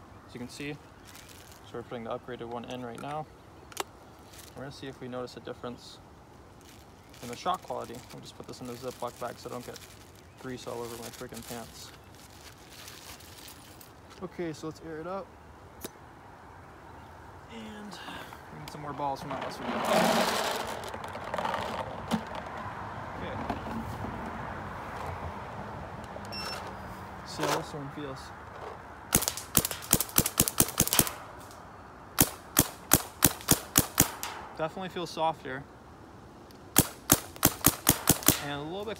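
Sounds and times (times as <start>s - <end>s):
plastic bag crinkling: 1.0s - 1.7s, 4.2s - 4.6s, 6.6s - 14.1s, 19.7s - 22.4s
paintball marker firing: 29.1s - 31.3s, 32.2s - 34.5s, 36.8s - 38.6s.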